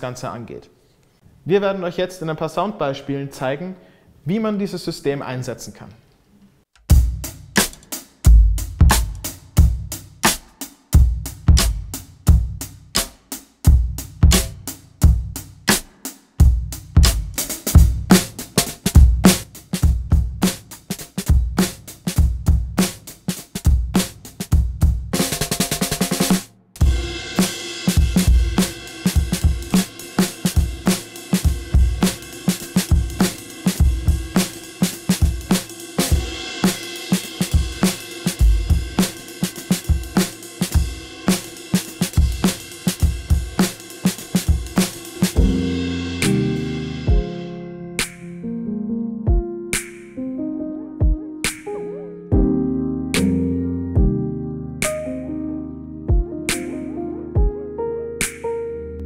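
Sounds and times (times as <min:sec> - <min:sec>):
drum kit groove: 0:06.8 - 0:48.5, 0:49.3 - 0:50.2, 0:51.0 - 0:52.6, 0:53.2 - 0:54.2, 0:54.8 - 0:55.2, 0:56.1 - 0:57.6.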